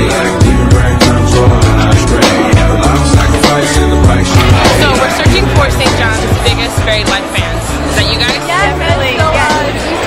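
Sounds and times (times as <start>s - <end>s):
person singing: 0.0s - 5.9s
drum beat and bass music: 0.0s - 10.0s.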